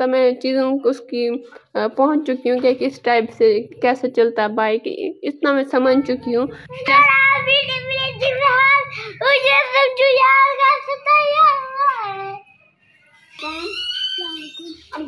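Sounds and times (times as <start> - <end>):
boy singing: 5.8 - 12.4.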